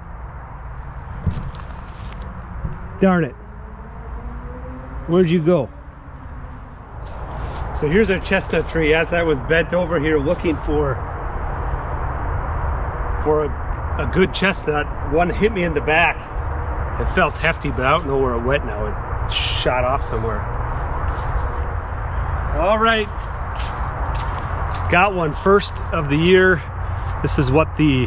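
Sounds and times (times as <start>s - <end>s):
low rumbling noise: 0.0s - 28.0s
footsteps in dry leaves and gravel: 0.8s - 2.8s, 7.0s - 9.3s, 17.0s - 18.2s, 19.9s - 22.0s, 22.9s - 27.5s.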